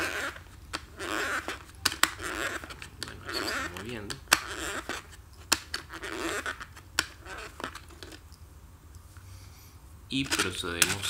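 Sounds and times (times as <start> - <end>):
cassette clicks: 0.0 - 8.2, 10.2 - 11.0
soft rubbing of cassette reels: 0.0 - 8.3, 10.1 - 11.0.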